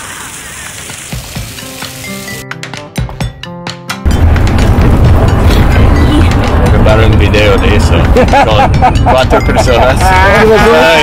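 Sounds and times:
fountain water splashing: 0.0 - 2.4
background music with low beats: 2.4 - 11.0.

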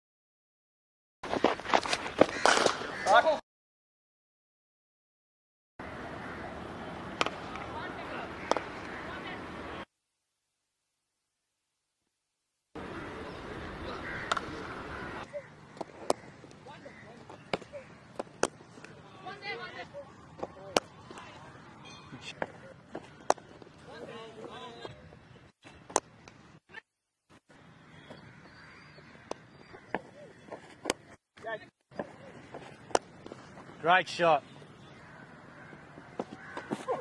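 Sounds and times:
cricket bat striking ball: 2.2 - 2.8, 7.1 - 7.6, 8.4 - 8.8, 14.2 - 14.8, 15.8 - 16.3, 17.3 - 19.0, 22.4 - 23.6, 32.0 - 33.3.

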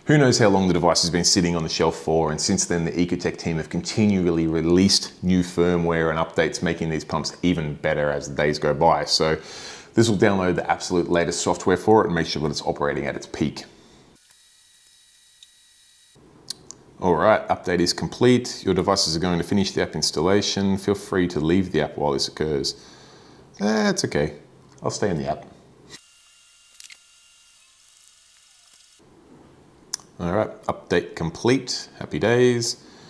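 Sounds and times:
faint room tone hiss: 0.0 - 14.2, 16.2 - 26.0, 27.9 - 33.0.

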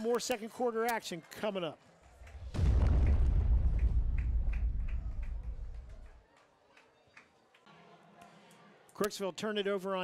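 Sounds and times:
deep boom with rumble: 2.4 - 6.1.

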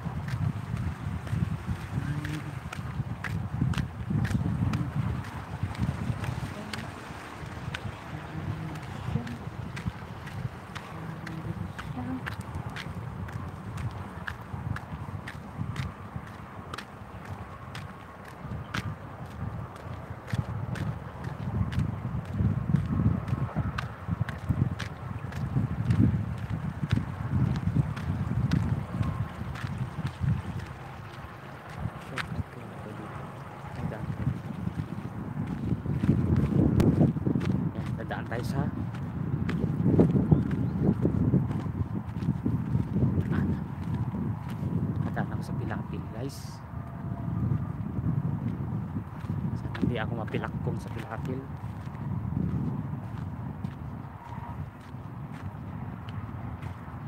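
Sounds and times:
wind buffeting microphone: 0.0 - 57.0
footsteps on concrete: 0.2 - 32.5, 33.7 - 45.2, 48.4 - 56.9.

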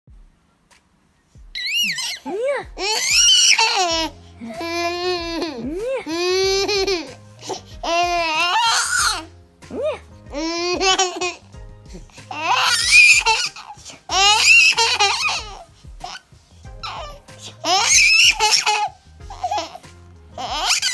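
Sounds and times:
soft low thumps: 0.1 - 0.4, 1.4 - 1.8, 2.6 - 7.1, 7.7 - 8.4, 9.0 - 12.4, 15.4 - 17.3
baby squealing: 1.5 - 16.2, 16.8 - 19.8, 20.4 - 20.9.

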